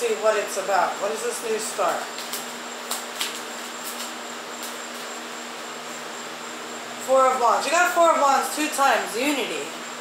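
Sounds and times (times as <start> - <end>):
low hum with high whine: 0.0 - 10.0.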